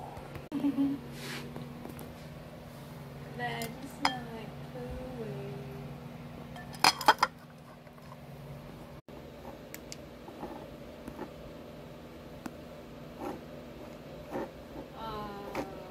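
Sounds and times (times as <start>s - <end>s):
low steady hum: 0.0s - 15.9s
kitchen ware clinking: 6.6s - 7.4s.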